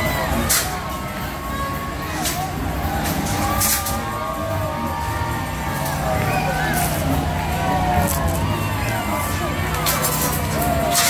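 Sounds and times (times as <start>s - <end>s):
diesel tractor engine rumbling: 0.0s - 11.0s.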